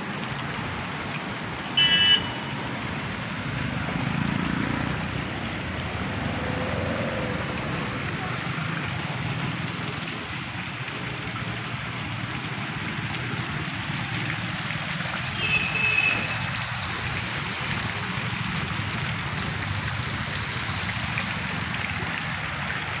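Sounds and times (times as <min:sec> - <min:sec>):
fountain water splashing: 0:00.0 - 0:23.0.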